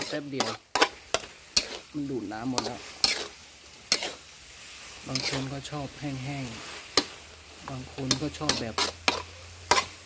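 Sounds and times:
food sizzling: 0:00.0 - 0:10.0
metal ladle scraping a wok: 0:00.0 - 0:10.0.

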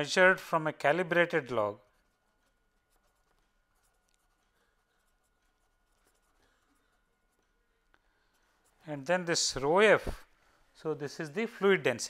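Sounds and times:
pen scratching on paper: 0:01.9 - 0:07.6.

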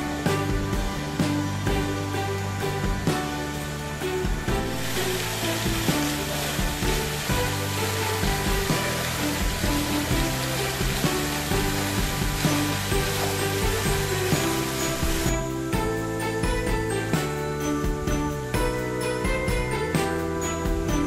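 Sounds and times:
background music: 0:00.0 - 0:21.0
fountain jets splashing into pool: 0:00.0 - 0:21.0.

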